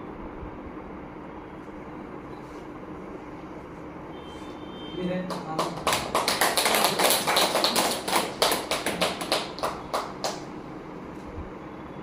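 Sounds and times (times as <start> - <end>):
audience clapping: 5.2 - 10.5.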